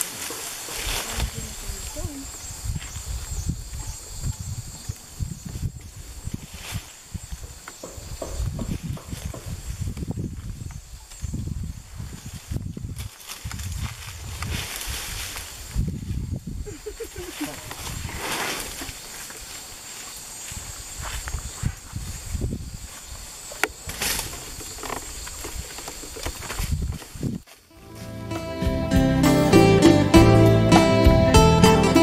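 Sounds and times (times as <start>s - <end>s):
leaves rustling: 0.0s - 28.4s
twigs cracking: 23.5s - 27.6s.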